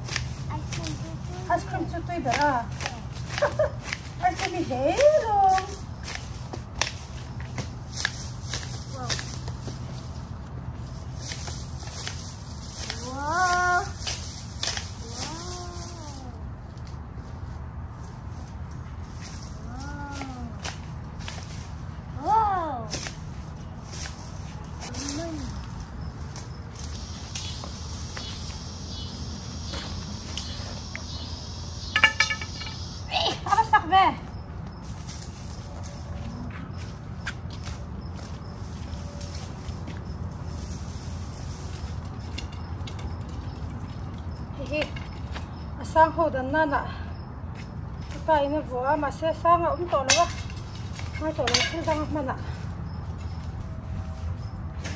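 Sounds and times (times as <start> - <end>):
garden shears snipping grass: 0.0 - 17.4, 18.2 - 45.7.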